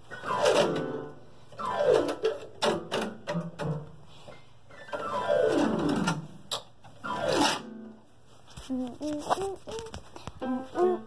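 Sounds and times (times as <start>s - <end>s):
voice singing a sliding note: 8.7s - 10.0s.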